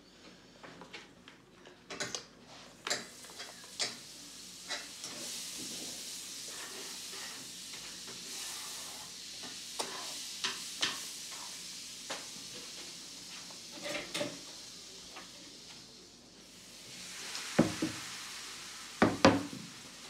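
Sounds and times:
steady high hiss: 2.9s - 20.0s.

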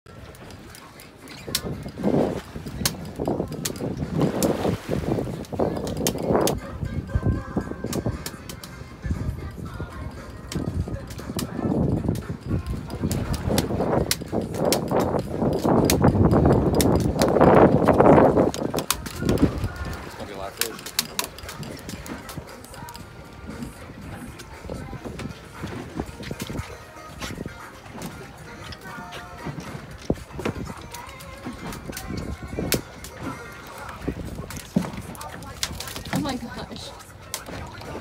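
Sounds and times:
rush of wind and water: 0.1s - 38.0s
fishing reel clicking: 10.4s - 23.1s.

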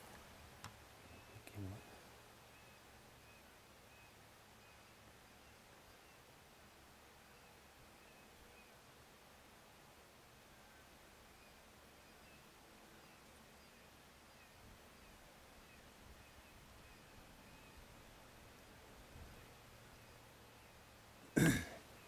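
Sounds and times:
faint outdoor hiss: 0.0s - 22.0s.

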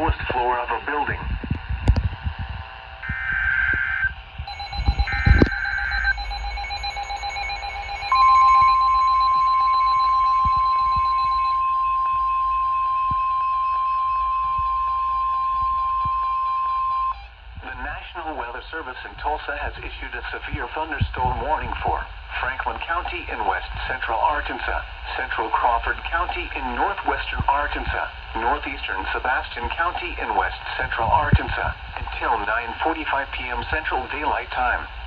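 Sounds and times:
digital header screech: 3.0s - 12.5s
pulsing beep: 3.0s - 17.3s
steady warning alarm tone: 3.0s - 17.4s.

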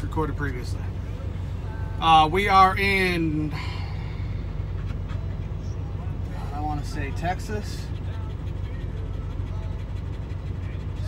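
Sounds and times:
diesel truck engine idling: 0.0s - 11.0s
dog panting: 4.9s - 11.0s.

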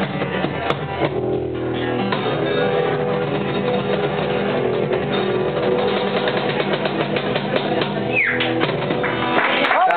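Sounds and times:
acoustic bass: 0.0s - 9.5s
acoustic guitar: 0.0s - 9.8s
cajon hits: 4.0s - 9.5s.

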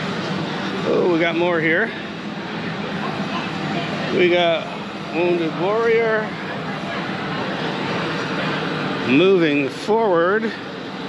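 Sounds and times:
exhibition hall background rush: 0.0s - 11.0s.

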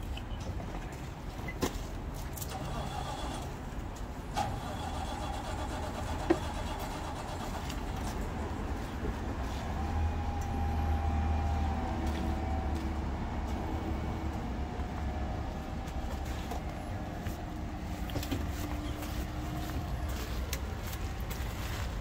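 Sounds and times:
engine hum: 0.0s - 22.0s
vehicle engine rumbling: 0.0s - 22.0s.

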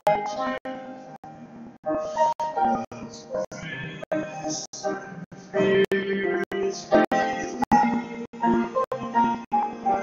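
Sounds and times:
upright piano: 0.0s - 10.0s
man singing into a microphone: 2.3s - 10.0s.

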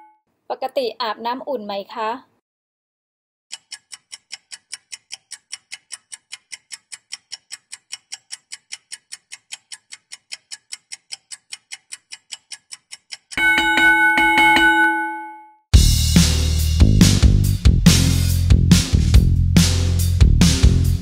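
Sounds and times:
clock ticking: 3.5s - 14.7s
ringing chime: 13.4s - 15.6s.

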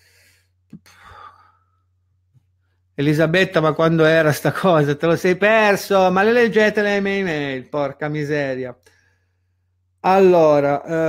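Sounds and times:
man sighing: 0.7s - 1.8s.

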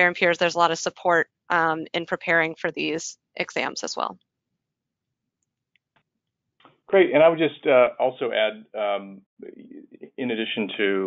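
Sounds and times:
woman speaking: 0.0s - 4.2s.

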